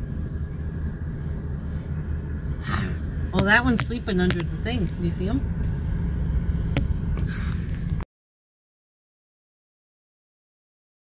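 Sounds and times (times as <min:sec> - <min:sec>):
car rumble from inside cabin: 0:00.0 - 0:08.0.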